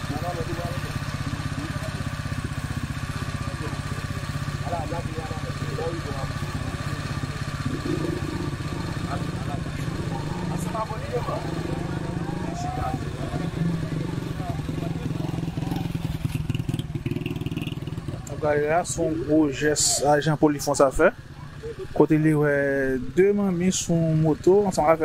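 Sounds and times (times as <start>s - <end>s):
small motorcycle engine idling: 0.0s - 25.0s.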